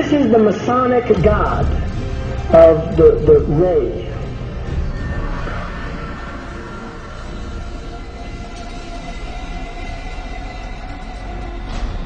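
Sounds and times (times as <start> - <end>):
ominous drone music: 0.0 - 12.0.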